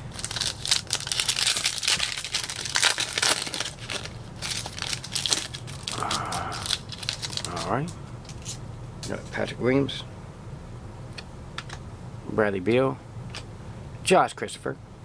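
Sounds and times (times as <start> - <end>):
foil wrapper crinkling: 0.0 - 8.6.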